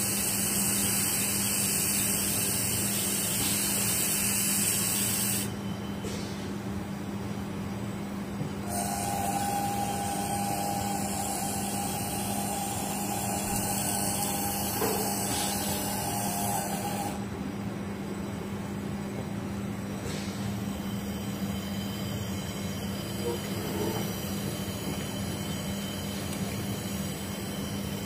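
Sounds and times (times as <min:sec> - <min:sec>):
laser welding hiss with whine: 0:00.0 - 0:05.9, 0:08.6 - 0:17.2
low machine hum: 0:00.0 - 0:28.0.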